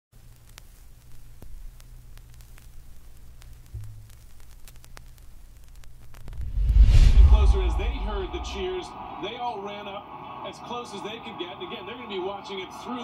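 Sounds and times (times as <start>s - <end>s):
faint clicks: 0.2s - 6.4s
low steady hum: 0.2s - 9.1s
loud low rumble: 6.2s - 9.0s
man talking on tv news: 7.3s - 13.0s.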